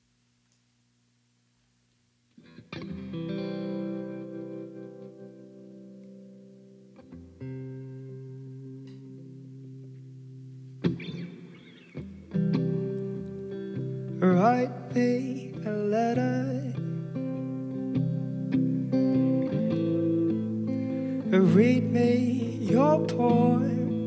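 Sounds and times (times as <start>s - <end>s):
faint amplifier hum: 0.0s - 24.0s
electric guitar chords: 2.3s - 24.0s.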